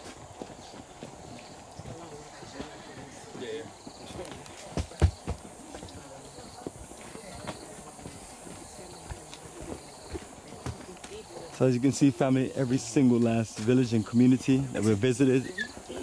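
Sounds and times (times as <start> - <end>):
footsteps on stone path: 0.0 - 16.0
quiet voices talking: 0.0 - 16.0.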